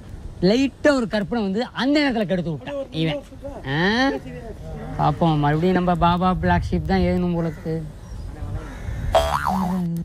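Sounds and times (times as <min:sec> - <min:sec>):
comedic boing sound effect: 0:09.1 - 0:09.9.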